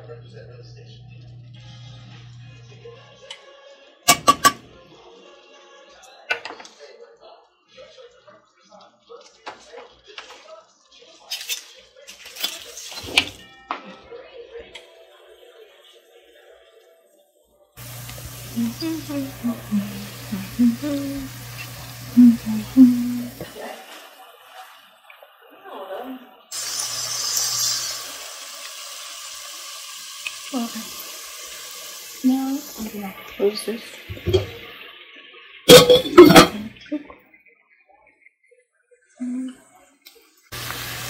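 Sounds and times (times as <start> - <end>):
quiet background music: 0.0 - 26.5
metal spoon knocking on pot: 4.1 - 4.6
woman humming a tune: 18.5 - 21.4, 22.1 - 23.4, 39.2 - 39.6.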